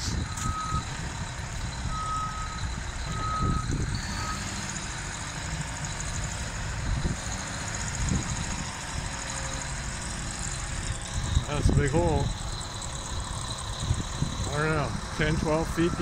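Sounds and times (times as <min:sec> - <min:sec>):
heavy machine engines rumbling: 0:00.0 - 0:16.0
backup alarm beeping: 0:01.8 - 0:04.5.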